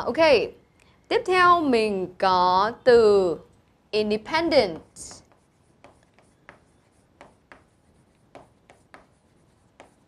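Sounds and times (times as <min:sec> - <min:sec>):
chalk tapping and scratching: 0:04.7 - 0:10.0.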